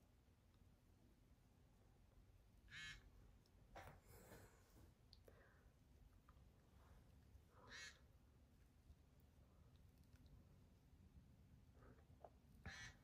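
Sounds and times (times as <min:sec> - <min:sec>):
faint raspy sounds: 0:06.8 - 0:08.5, 0:11.6 - 0:13.0.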